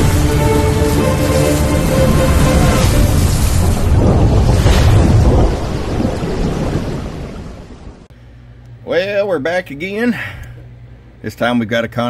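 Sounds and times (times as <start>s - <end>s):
deep rumbling noise with hiss: 0.0s - 8.1s.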